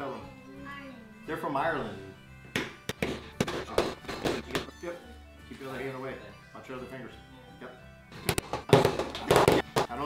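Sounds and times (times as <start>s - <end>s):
knocks on a wooden table: 8.3s - 9.9s.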